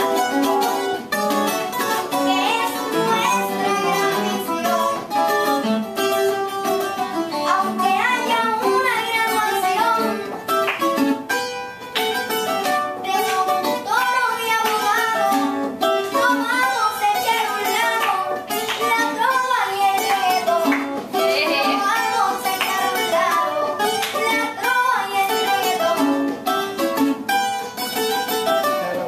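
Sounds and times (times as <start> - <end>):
guitar playing: 0.0 - 29.0
person singing: 2.1 - 5.4, 7.0 - 10.6, 13.0 - 26.3.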